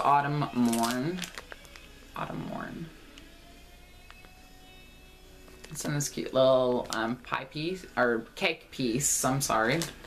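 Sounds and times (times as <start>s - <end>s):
plastic bag ticking: 0.5s - 1.9s.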